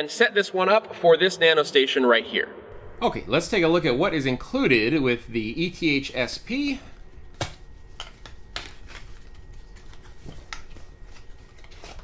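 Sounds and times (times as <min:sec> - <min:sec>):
cardboard and paper rustling: 0:05.1 - 0:12.0.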